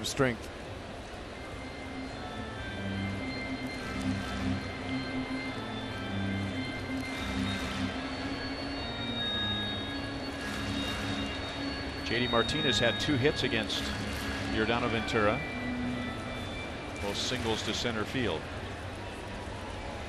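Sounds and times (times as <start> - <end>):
crowd noise: 0.0 - 20.0
music over sound system: 1.6 - 18.3.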